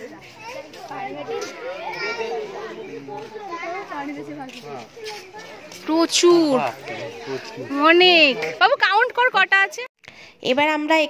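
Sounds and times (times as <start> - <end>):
children and adults talking: 0.0 - 11.0.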